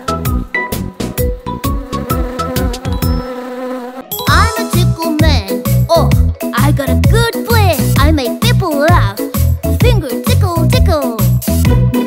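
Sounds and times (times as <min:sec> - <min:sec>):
cartoon bee buzzing: 0:00.0 - 0:05.6.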